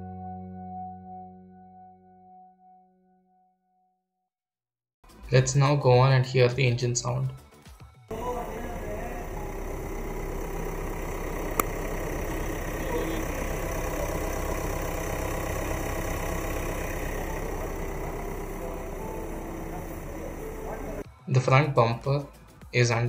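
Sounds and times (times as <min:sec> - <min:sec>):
diesel engine idling: 0:08.1 - 0:21.0.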